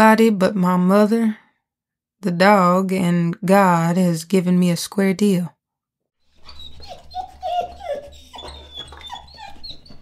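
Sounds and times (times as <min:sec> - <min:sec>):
dog whining: 0:06.4 - 0:10.0.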